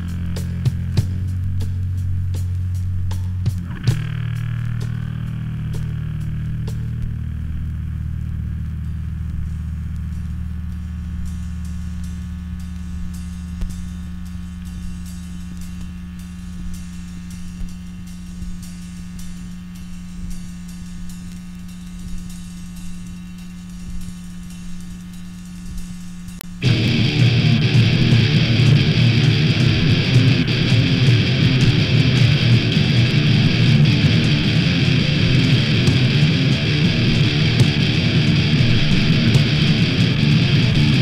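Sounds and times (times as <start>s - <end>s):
vinyl crackle: 0.0s - 41.0s
droning electric guitar chord: 3.6s - 16.4s, 26.6s - 41.0s.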